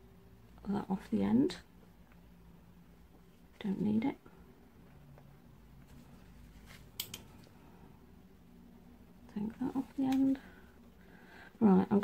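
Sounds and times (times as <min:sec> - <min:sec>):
faint low hum: 0:00.0 - 0:12.0.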